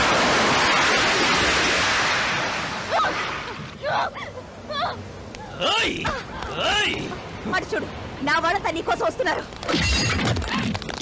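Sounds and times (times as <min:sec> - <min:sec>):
loud shattering crash: 0:09.7 - 0:10.8.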